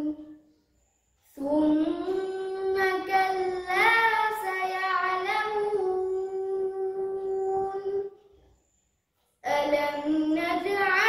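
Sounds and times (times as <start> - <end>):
boy chanting recitation: 0.0 - 0.4, 1.3 - 8.4, 9.4 - 11.0.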